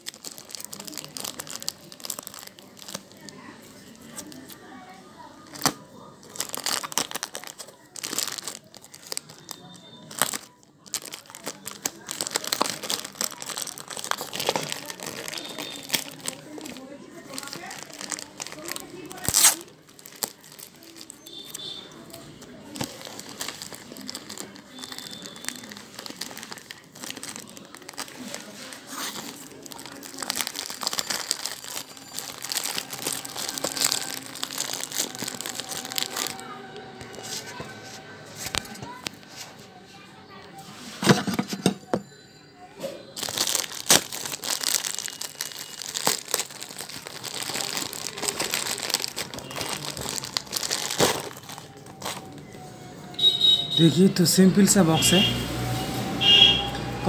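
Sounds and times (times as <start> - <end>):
plastic bag crinkling and tearing: 0.0 - 4.7, 5.4 - 37.8, 43.2 - 53.3
sharp plastic crack: 19.1 - 19.7, 43.2 - 52.3.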